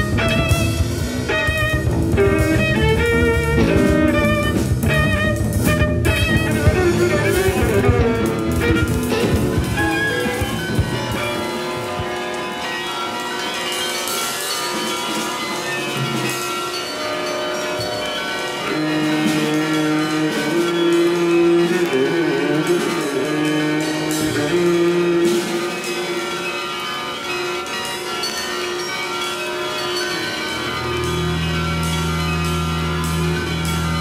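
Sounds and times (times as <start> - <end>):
bowed viola: 0.0 - 11.7
dense held notes: 0.0 - 27.7, 29.4 - 34.0.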